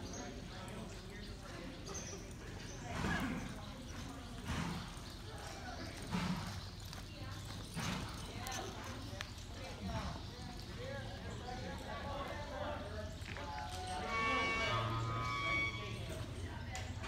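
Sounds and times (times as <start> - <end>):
indistinct voices: 0.0 - 17.0
horse hooves thudding on dirt: 2.9 - 11.2.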